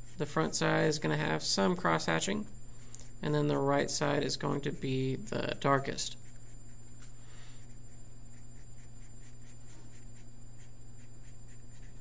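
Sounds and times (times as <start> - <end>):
marker scratching on paper: 0.0 - 0.4, 6.1 - 12.0
steady low hum: 0.0 - 12.0.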